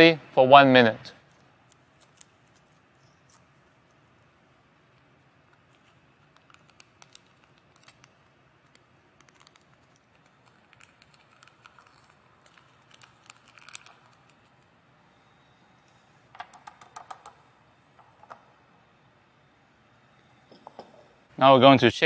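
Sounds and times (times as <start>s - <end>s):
foil packet crinkling: 5.5s - 14.8s
salts pouring through funnel: 9.2s - 15.2s.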